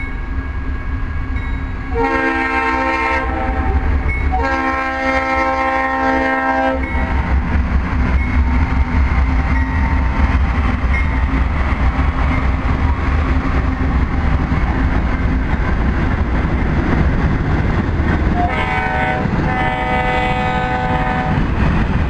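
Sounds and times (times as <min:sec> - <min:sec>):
train rumbling: 0:00.0 - 0:22.0
diesel locomotive horn blasts: 0:01.9 - 0:07.2, 0:18.4 - 0:21.5.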